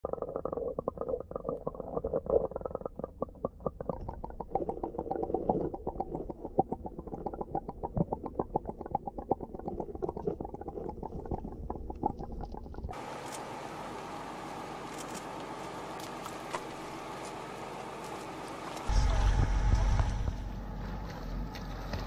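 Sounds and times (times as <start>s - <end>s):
muffled underwater gurgling: 0.0s - 13.0s.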